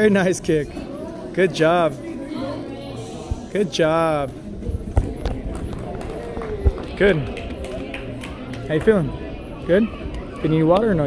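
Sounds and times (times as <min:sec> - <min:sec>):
murmur of gym hall: 0:00.0 - 0:11.0.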